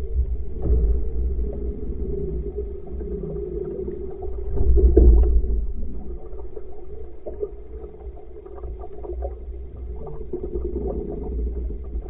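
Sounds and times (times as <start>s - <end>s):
low rumble of water along hull: 0.0s - 12.0s.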